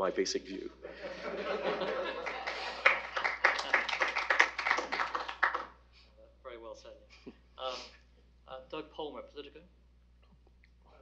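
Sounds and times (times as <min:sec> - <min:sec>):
audience applause: 0:01.6 - 0:05.7.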